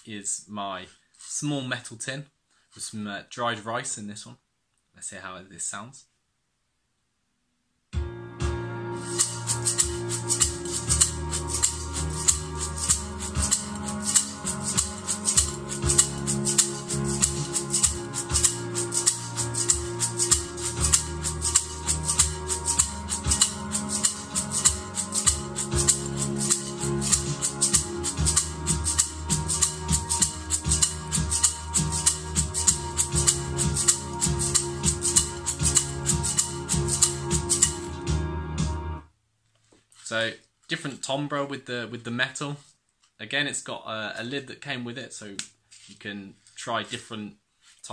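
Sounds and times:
music with low sustained notes: 8.0s - 39.1s.

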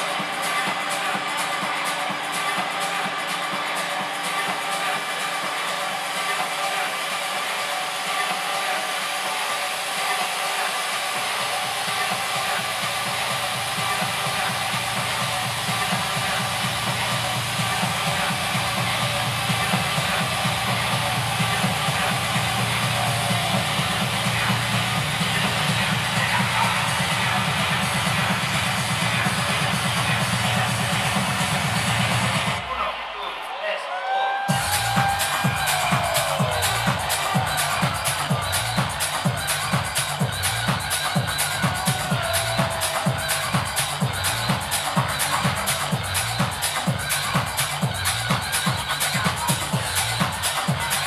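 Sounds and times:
electronic dance music: 0.0s - 51.0s.

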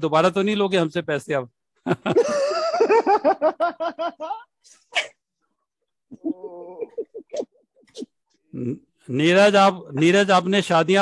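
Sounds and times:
man laughing: 1.8s - 4.5s, 6.1s - 7.4s.

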